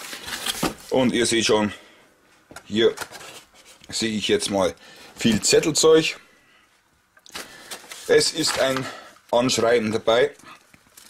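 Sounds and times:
paper rustling: 0:07.3 - 0:09.0.

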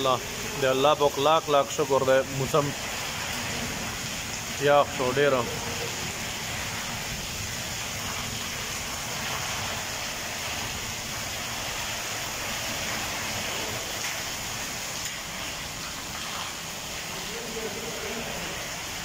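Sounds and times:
steady rain hiss: 0:00.0 - 0:19.0.

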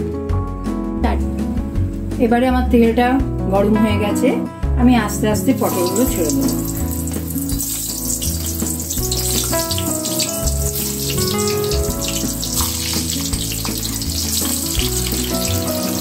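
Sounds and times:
background music with held notes: 0:00.0 - 0:16.0
vegetables frying in hot oil: 0:05.6 - 0:16.0.

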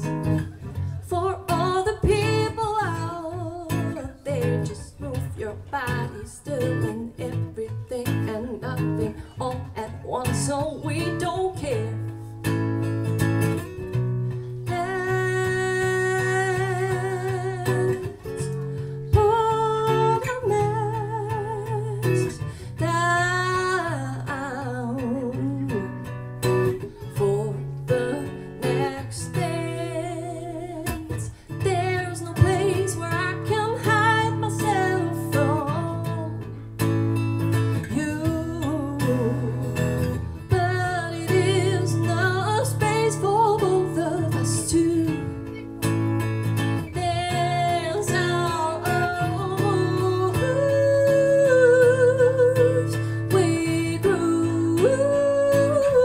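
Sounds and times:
woman singing with vibrato: 0:00.0 - 0:12.6, 0:14.6 - 0:36.6, 0:37.8 - 0:45.7, 0:46.6 - 0:56.0
strummed acoustic guitar: 0:00.0 - 0:56.0.

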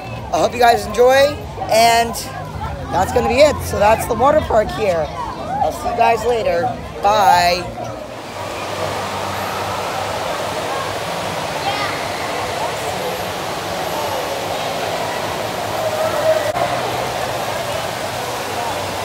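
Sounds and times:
chatter of many people: 0:00.0 - 0:19.0
running water: 0:00.0 - 0:19.0.

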